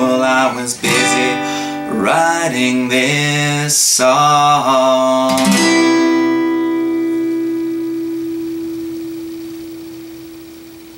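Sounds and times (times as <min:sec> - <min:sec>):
acoustic guitar chord ringing: 0:00.0 - 0:10.9.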